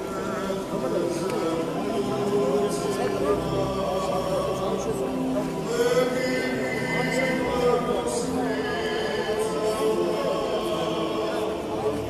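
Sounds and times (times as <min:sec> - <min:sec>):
crowd singing together: 0:00.0 - 0:12.0.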